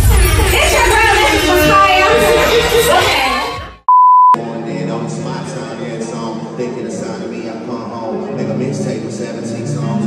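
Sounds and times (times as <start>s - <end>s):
music: 0.0s - 3.8s, 4.4s - 10.0s
test-tone beep: 3.9s - 4.4s.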